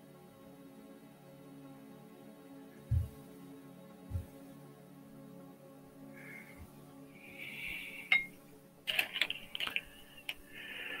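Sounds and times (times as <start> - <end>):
faint background music: 0.0 - 11.0
clicks of small hard objects: 8.9 - 10.4.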